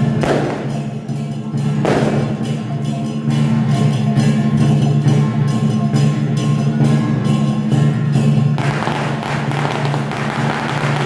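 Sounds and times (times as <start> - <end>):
firecrackers crackling: 0.0 - 2.8, 8.6 - 11.0
percussion strikes: 0.0 - 11.0.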